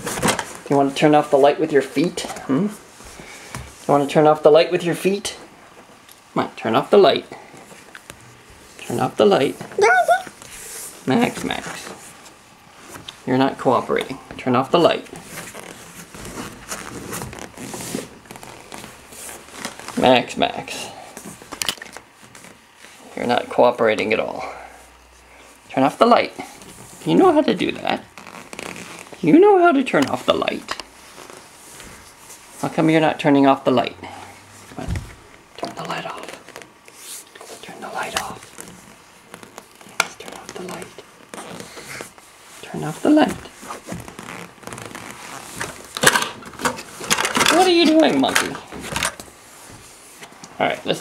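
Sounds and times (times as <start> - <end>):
hand rubbing microphone: 15.0 - 20.0, 28.1 - 29.2, 30.8 - 32.8, 34.1 - 45.9
small handling noises: 34.1 - 51.0
whispered voice: 35.6 - 36.4, 37.5 - 38.5, 40.0 - 41.0.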